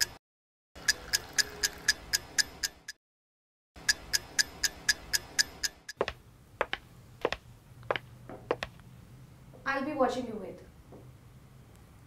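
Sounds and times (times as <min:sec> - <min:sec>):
clock ticking fast: 0:00.8 - 0:03.0, 0:03.8 - 0:06.8.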